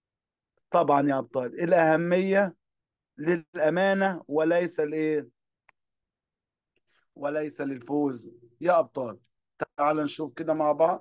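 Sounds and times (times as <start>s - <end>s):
man speaking: 0.7s - 5.4s, 7.2s - 11.0s.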